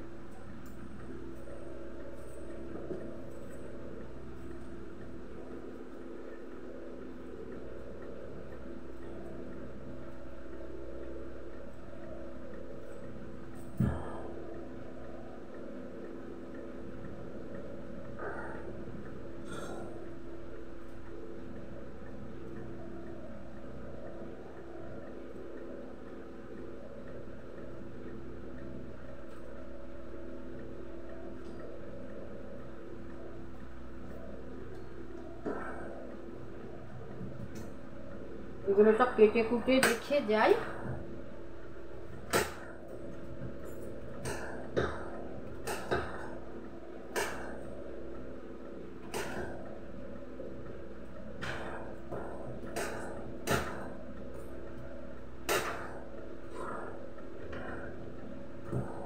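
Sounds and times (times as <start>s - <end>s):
steady low hum: 0.0s - 59.0s.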